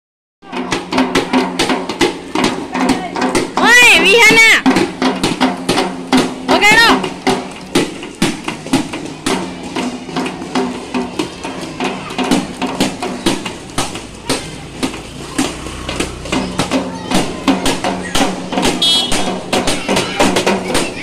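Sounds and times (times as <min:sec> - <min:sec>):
children beating toy drums: 0:00.4 - 0:21.0.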